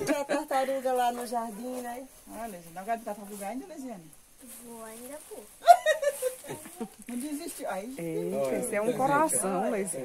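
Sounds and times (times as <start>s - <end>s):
women talking: 0.0s - 10.0s.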